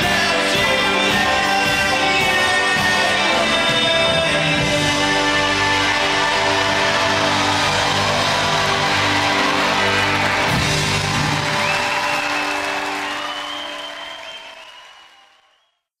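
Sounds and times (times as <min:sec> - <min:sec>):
rock band closing chord: 0:00.0 - 0:13.6
crowd applause: 0:00.0 - 0:15.7.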